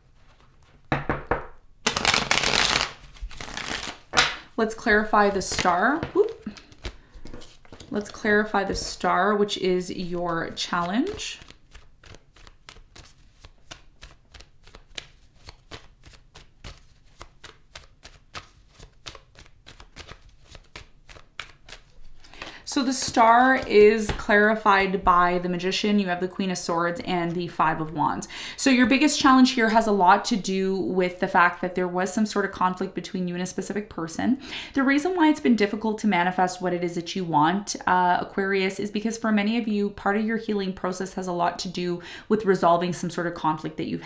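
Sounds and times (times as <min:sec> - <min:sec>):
cards being shuffled by hand: 0:00.2 - 0:00.9, 0:01.8 - 0:09.1, 0:09.7 - 0:24.6.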